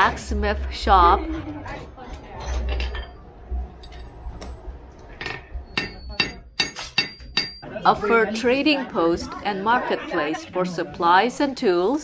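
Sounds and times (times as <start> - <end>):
hammer striking iron on anvil: 5.3 - 7.6.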